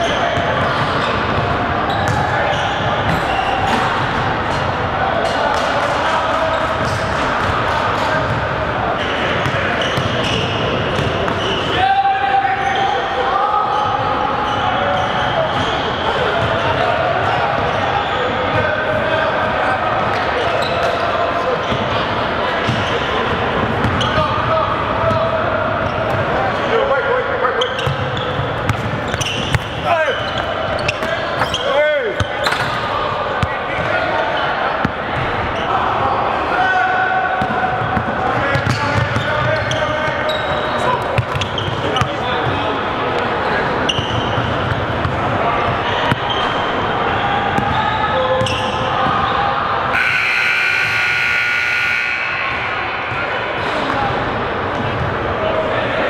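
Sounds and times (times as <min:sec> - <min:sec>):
shoe squeaks: 0:01.9 - 0:03.9, 0:09.0 - 0:11.8, 0:13.7 - 0:18.3, 0:20.4 - 0:21.0, 0:27.6 - 0:32.8, 0:38.6 - 0:42.1, 0:43.9 - 0:44.6, 0:47.6 - 0:48.8.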